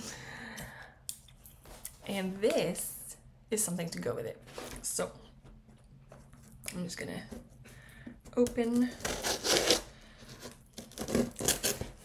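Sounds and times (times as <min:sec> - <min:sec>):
scissors cutting packaging: 0:08.7 - 0:12.0.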